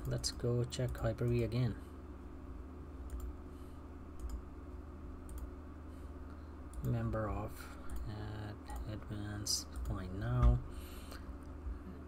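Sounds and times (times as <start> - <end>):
low electrical hum: 0.0 - 12.0
computer mouse clicks: 3.0 - 3.3, 4.2 - 4.4, 5.3 - 5.5.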